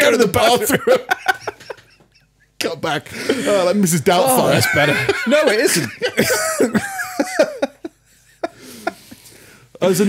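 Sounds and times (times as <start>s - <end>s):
man laughing: 0.6s - 2.6s, 4.4s - 9.2s.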